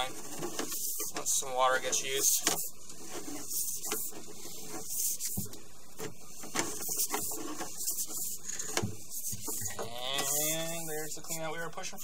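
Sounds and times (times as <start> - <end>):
cable scraping inside pipe: 0.0 - 12.0.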